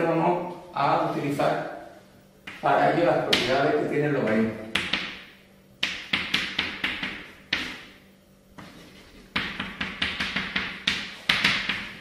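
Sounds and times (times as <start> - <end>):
chalk on blackboard: 5.8 - 8.0, 8.6 - 12.0.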